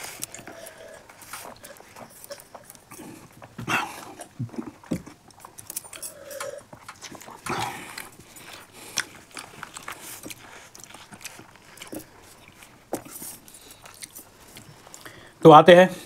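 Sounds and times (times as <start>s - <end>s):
breathy sounds: 0.0s - 4.6s, 5.8s - 12.2s, 13.1s - 15.4s
wet chewing: 0.0s - 15.4s.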